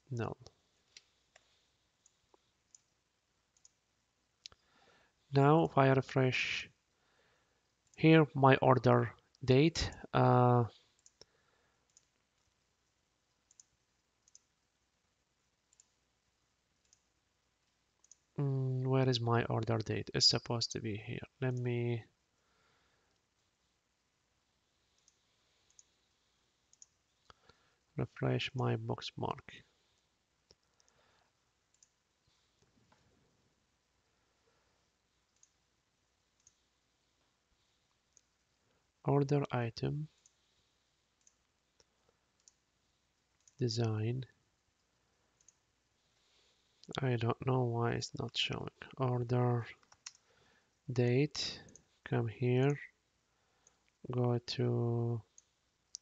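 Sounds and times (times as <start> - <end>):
faint computer mouse clicks: 0.4 - 2.9, 3.5 - 3.8, 10.8 - 14.6, 15.7 - 16.0, 16.8 - 18.3, 24.9 - 26.1, 26.7 - 27.7, 30.4 - 33.1, 35.2 - 35.6, 36.4 - 36.7, 41.2 - 42.6, 44.8 - 45.6, 49.8 - 50.3, 55.3 - 56.0.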